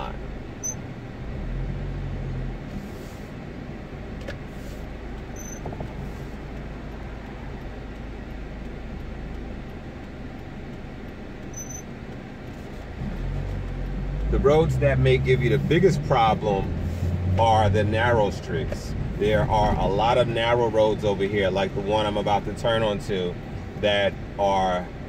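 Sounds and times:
car engine and road noise: 0.0s - 25.0s.

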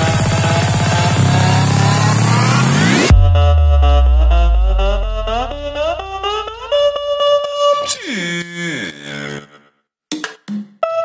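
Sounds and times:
synth riser climbing in pitch: 0.0s - 7.2s.

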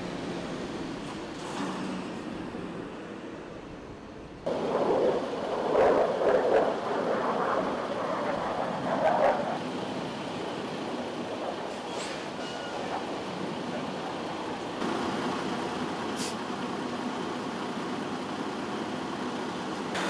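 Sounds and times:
heavy truck engine and road noise: 0.0s - 5.6s, 9.5s - 20.0s.

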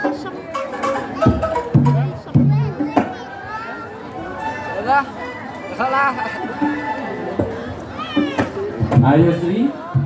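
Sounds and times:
people calling and talking: 0.0s - 10.0s.

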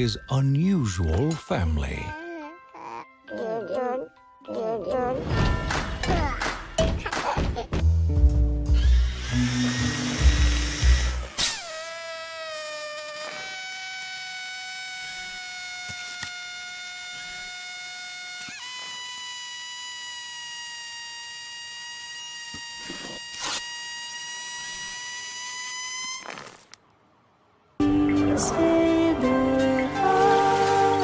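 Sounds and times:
air hissing whistle from puncture: 18.6s - 26.6s.

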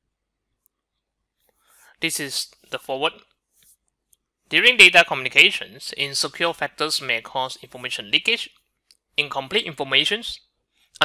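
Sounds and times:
soft breath: 1.4s - 2.0s.

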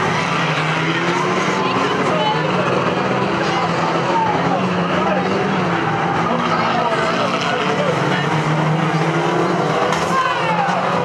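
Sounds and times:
racing car engines revving: 0.0s - 11.0s.

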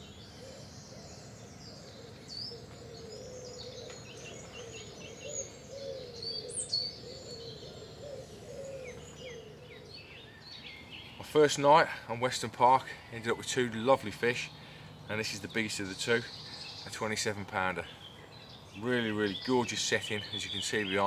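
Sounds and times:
low wavering cooing call: 0.0s - 10.9s
birds chirping and trilling: 0.0s - 21.0s.

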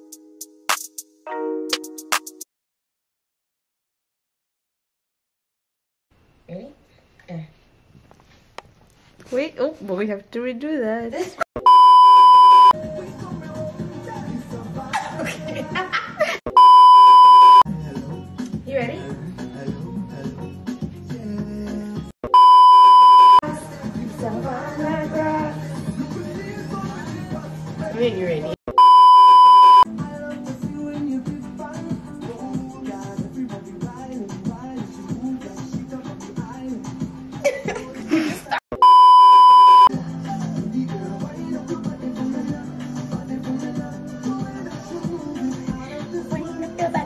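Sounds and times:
background music: 0.0s - 2.4s, 12.4s - 16.4s, 17.7s - 22.1s, 23.4s - 28.6s, 29.9s - 38.6s, 39.9s - 47.0s
loud electronic censor bleep: 11.6s - 12.8s, 16.5s - 17.7s, 22.3s - 23.4s, 28.7s - 29.9s, 38.8s - 39.9s.

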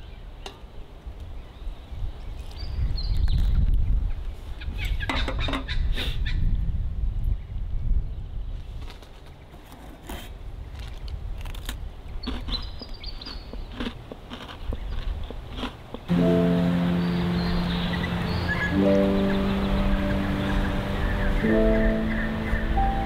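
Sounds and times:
bird chirping: 12.2s - 13.9s, 14.6s - 23.0s
low rumble: 16.1s - 23.0s.

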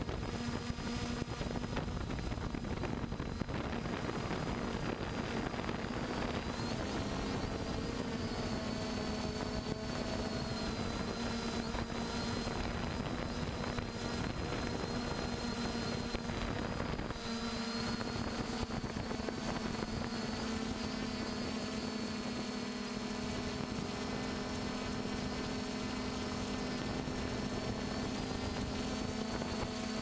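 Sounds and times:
drone motors humming and whining: 0.0s - 30.0s.

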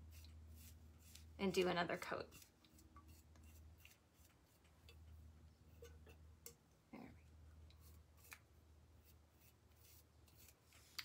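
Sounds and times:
paintbrush scraping metal can: 0.0s - 6.3s, 7.7s - 11.0s
low steady hum: 0.0s - 11.0s.

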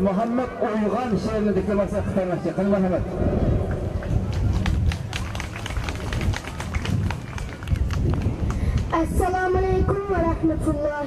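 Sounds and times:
crowd chatter: 0.0s - 10.4s
low rumble: 2.8s - 10.7s
audience clapping: 4.0s - 9.1s.

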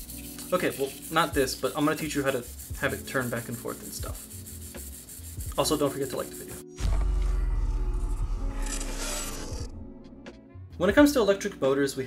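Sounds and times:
deep bass hit: 6.8s - 10.3s.

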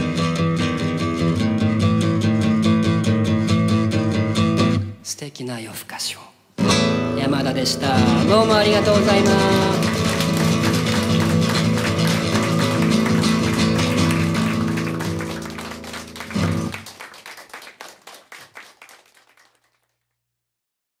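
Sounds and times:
acoustic guitar playing: 0.0s - 5.0s, 6.6s - 17.0s.

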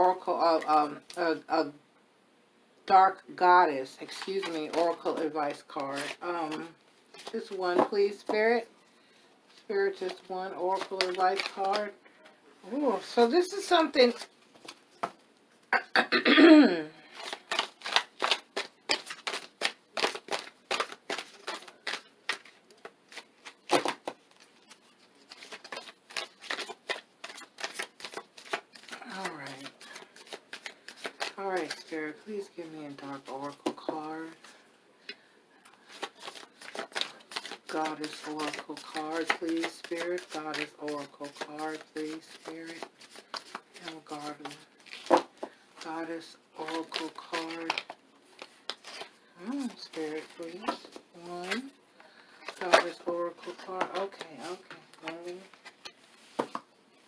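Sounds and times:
cards being shuffled: 3.9s - 8.6s, 9.5s - 12.0s, 12.7s - 15.2s, 17.1s - 34.6s, 35.6s - 51.7s, 52.4s - 56.7s
woman speaking softly: 29.0s - 29.8s, 49.4s - 51.8s, 52.6s - 55.5s.

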